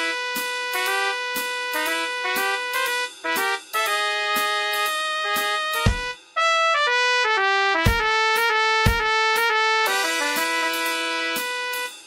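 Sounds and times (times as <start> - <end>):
drum and cymbal hits: 0.0 - 6.4, 7.8 - 12.0
held lower brass: 0.0 - 12.0
trumpet melody: 0.0 - 12.0.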